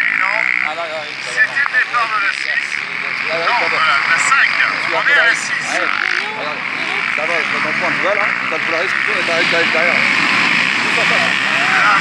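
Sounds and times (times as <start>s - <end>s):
quad engines revving: 0.0s - 12.0s
voices: 0.0s - 12.0s.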